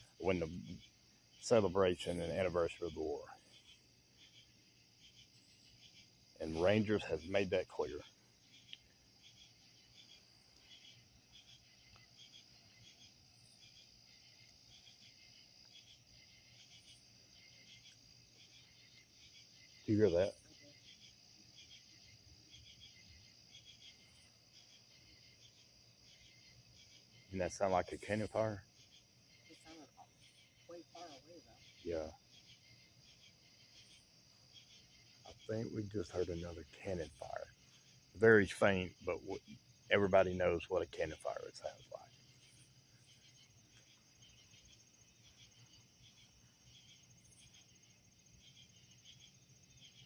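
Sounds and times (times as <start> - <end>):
cricket chirps: 0.0 - 50.0
insects trilling: 0.0 - 50.0.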